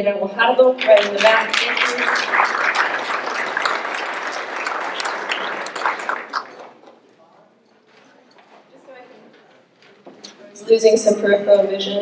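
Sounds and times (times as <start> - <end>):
audience applauding: 0.8 - 7.0.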